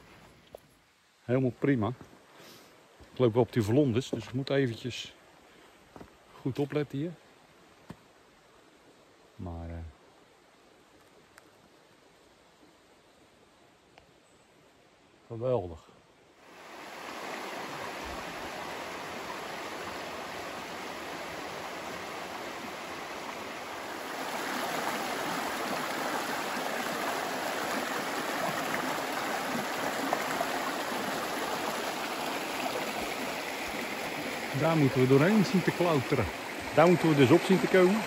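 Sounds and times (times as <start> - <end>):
stream rushing over stones: 16.4 - 38.0.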